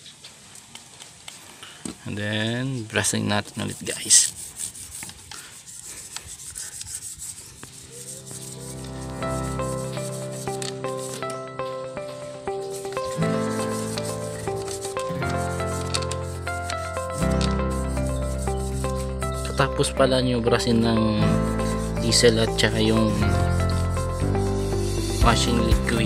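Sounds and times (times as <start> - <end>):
brush scrubbing a chain: 3.0 - 11.4, 12.5 - 19.6, 21.3 - 24.6
background music with held chords: 8.2 - 26.0.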